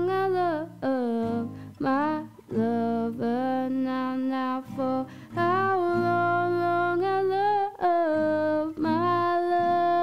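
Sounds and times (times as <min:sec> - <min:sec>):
acoustic guitar: 0:00.0 - 0:10.0
woman singing wordless notes: 0:00.0 - 0:10.0.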